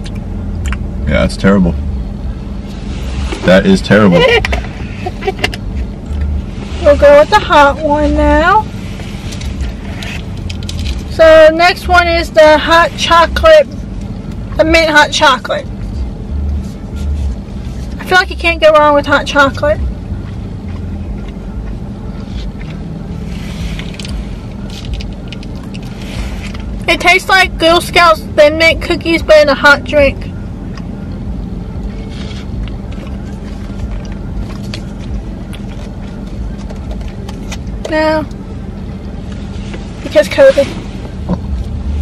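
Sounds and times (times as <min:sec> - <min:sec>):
car cabin rumble: 0:00.0 - 0:42.0
faint background music: 0:06.1 - 0:42.0.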